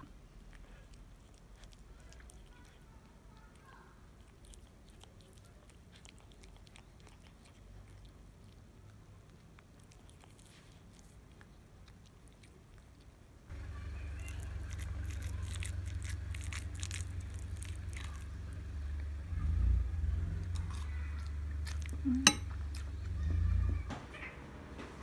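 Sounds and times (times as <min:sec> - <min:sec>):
spoon scraping ceramic bowl: 0:22.2 - 0:22.5.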